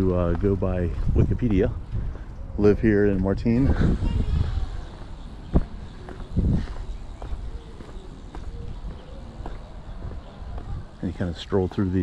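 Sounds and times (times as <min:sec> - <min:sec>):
footsteps on stone paving: 0:00.0 - 0:02.4, 0:04.3 - 0:12.0.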